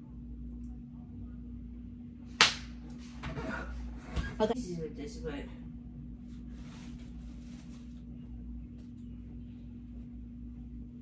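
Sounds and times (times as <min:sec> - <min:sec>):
faint steady hum: 0:00.0 - 0:11.0
sharp hand slap: 0:02.4 - 0:02.8.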